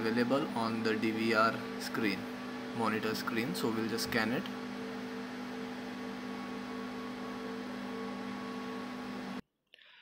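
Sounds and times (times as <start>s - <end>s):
steady background hum: 0.0s - 9.4s.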